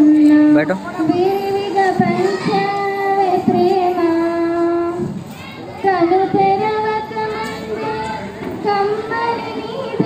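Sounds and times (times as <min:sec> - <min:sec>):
woman singing into a microphone: 0:00.0 - 0:05.2, 0:05.8 - 0:10.0.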